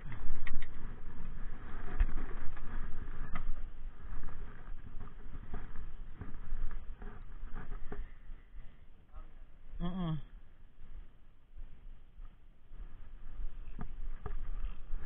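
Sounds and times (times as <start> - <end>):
low steady rumble: 0.0 - 15.0.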